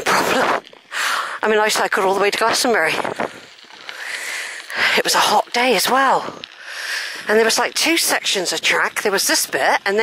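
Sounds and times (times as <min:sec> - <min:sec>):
wind noise: 0:00.0 - 0:00.9, 0:01.7 - 0:06.5
bicycle rolling on gravel: 0:00.0 - 0:10.0.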